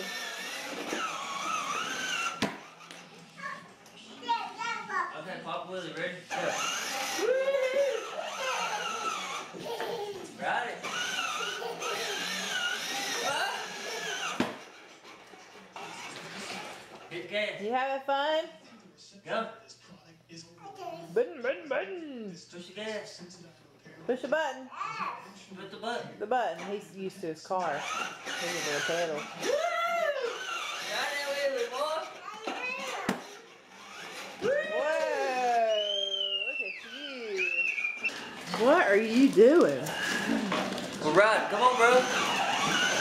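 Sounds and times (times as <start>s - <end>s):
toddler squealing: 6.6s - 10.3s, 10.9s - 14.4s, 29.4s - 31.2s, 33.9s - 38.4s.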